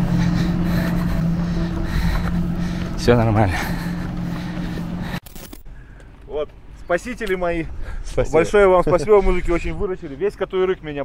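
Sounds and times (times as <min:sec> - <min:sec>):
car engines on gravel road: 0:00.0 - 0:07.1.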